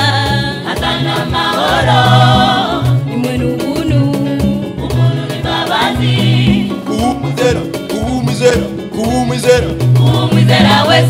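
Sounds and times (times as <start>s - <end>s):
gospel choir singing: 0.0s - 3.4s, 4.6s - 7.8s, 8.4s - 11.0s
lead singer voice: 0.0s - 11.0s
steady beat: 0.0s - 11.0s
stepping bass line: 0.0s - 11.0s.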